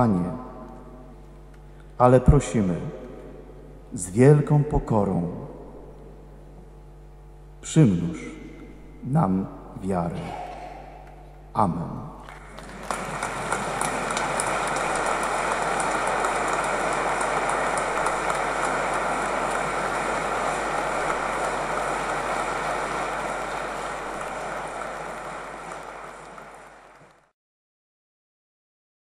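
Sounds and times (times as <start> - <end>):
crowd applauding: 12.2 - 27.3.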